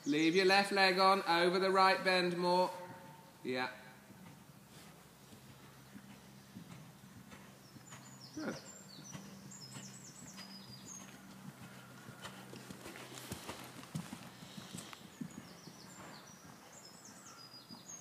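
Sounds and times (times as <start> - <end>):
horse hoofbeats on sand: 4.1 - 18.0.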